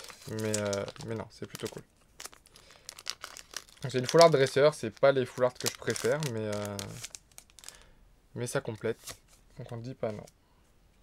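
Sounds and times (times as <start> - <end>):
foil wrapper crinkling: 0.0 - 7.9.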